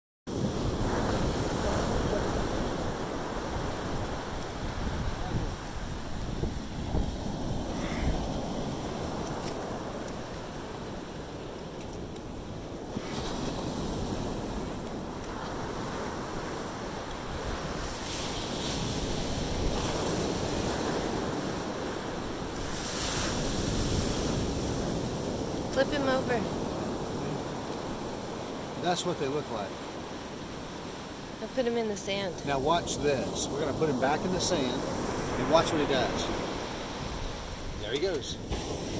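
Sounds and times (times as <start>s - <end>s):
wind buffeting microphone: 0.3s - 28.8s
surf washing over sand: 0.3s - 38.9s.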